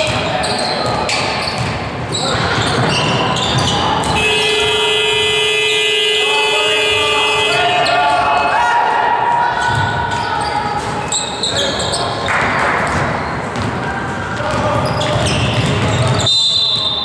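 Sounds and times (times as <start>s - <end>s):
voices shouting: 2.1s - 16.3s.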